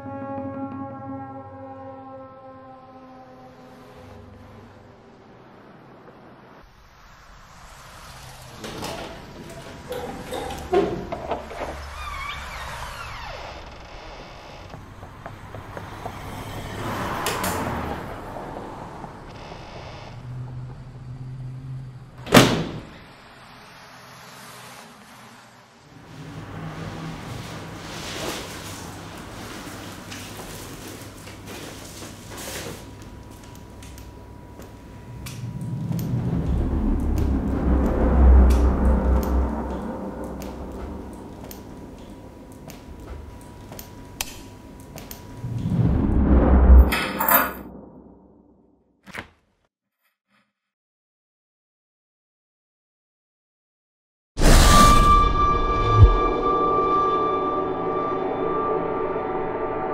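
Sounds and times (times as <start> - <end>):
door hinges creaking: 8.6 - 14.8
deep low rumble: 34.3 - 43.6, 45.4 - 48.6, 54.5 - 59.9.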